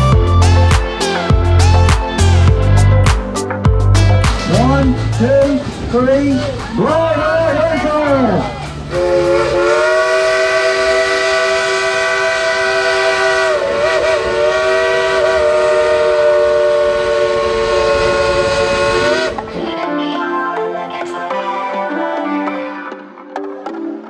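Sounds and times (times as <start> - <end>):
steam locomotive chime whistle: 8.9 - 19.4.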